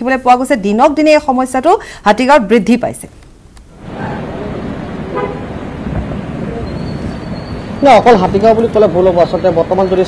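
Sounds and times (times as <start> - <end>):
traffic on wet street: 3.7 - 10.0
vehicle horn toot: 5.1 - 5.6.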